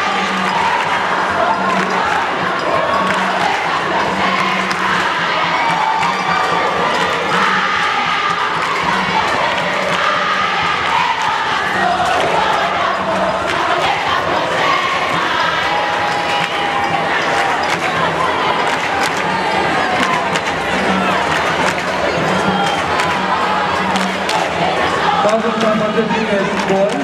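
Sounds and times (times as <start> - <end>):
crowd cheering: 0.0 - 27.0
crowd of girls singing and chanting: 0.0 - 27.0.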